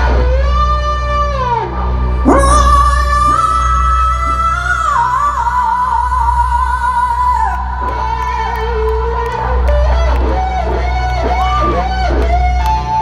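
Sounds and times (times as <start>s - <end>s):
electric guitar: 0.0s - 13.0s
singer holding long notes: 2.1s - 9.8s.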